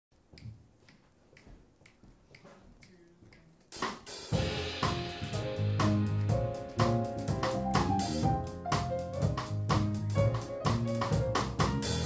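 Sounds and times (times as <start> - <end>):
band music with drums: 3.7 - 12.0.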